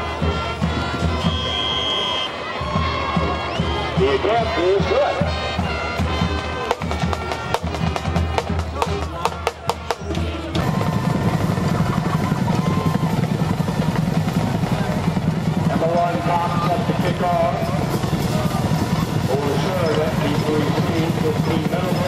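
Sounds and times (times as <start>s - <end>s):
band music: 0.0s - 22.0s
snare and bass drum strokes: 2.8s - 22.0s.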